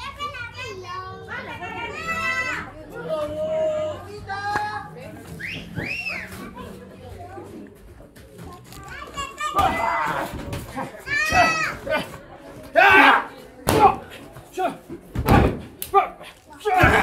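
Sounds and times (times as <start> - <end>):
children's voices: 0.0 - 2.8, 8.4 - 12.1
spectators shouting and yelling: 9.2 - 14.1.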